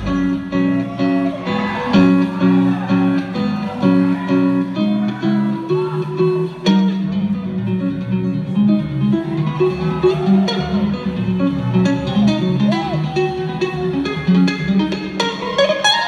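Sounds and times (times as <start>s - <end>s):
live rock band: 0.0s - 16.0s.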